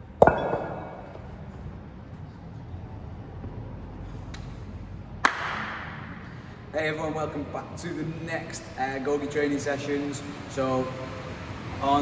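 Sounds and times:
sharp slap crack: 5.2s - 6.0s.

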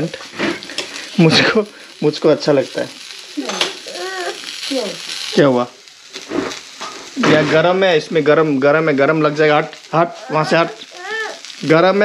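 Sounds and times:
food sizzling in a pan: 0.0s - 12.0s.

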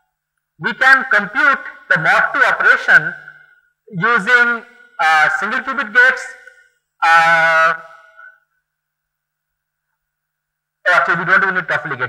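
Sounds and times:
faint electrical hum: 0.1s - 12.0s
man's voice: 0.6s - 3.2s, 3.9s - 8.3s, 10.9s - 12.0s.

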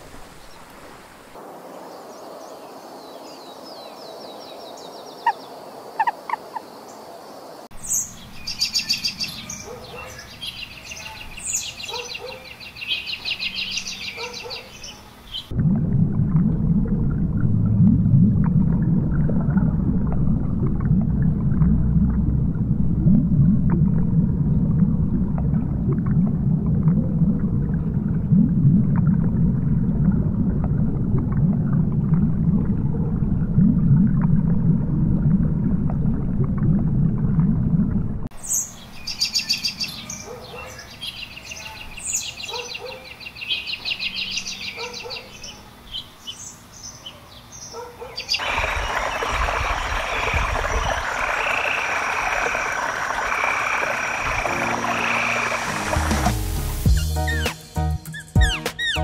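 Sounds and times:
frog chorus croaking: 5.1s - 7.6s, 48.3s - 56.2s
deep underwater rumble: 15.5s - 38.3s, 48.4s - 56.8s
high rapid chirping trills: 56.9s - 59.0s.

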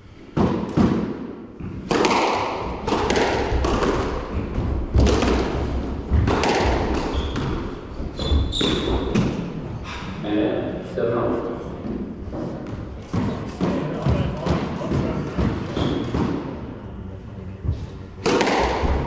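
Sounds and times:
squash ball hitting racquets and walls: 0.2s - 9.8s, 11.8s - 16.7s, 17.6s - 19.0s.

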